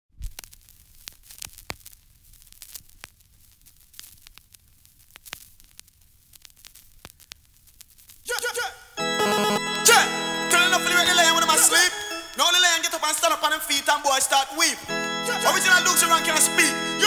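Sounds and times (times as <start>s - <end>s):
vinyl crackles and pops: 0.1s - 9.6s, 10.9s - 15.0s
vinyl record hiss: 0.1s - 17.0s.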